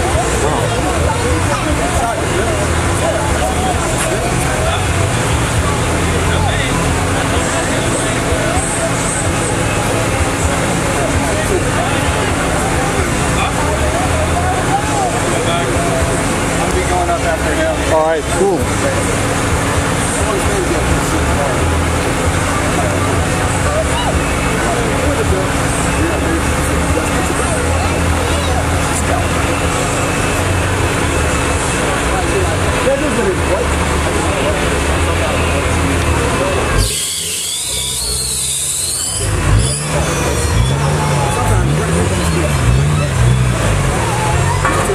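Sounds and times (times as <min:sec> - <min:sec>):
car engine idling: 0:00.0 - 0:44.9
crowd chatter: 0:00.0 - 0:44.9
people talking: 0:00.0 - 0:44.9.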